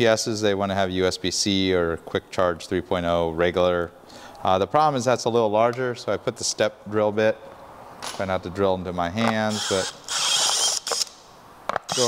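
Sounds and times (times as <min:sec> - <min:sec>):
cordless drill whining: 0:09.5 - 0:11.2.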